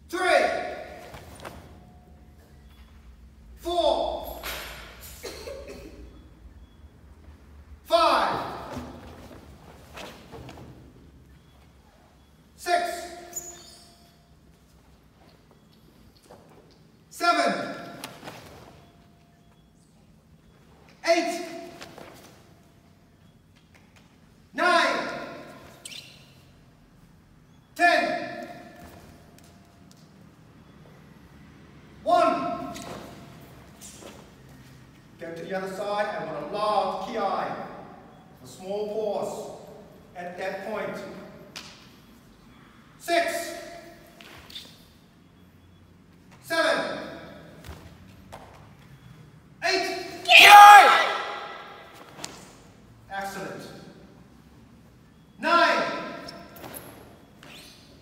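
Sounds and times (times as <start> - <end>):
loud shout echoing: 0.0 - 1.0, 3.6 - 4.5, 7.8 - 9.0, 12.6 - 13.4, 32.0 - 32.8, 49.6 - 52.0
sharp karate shout: 49.6 - 52.0.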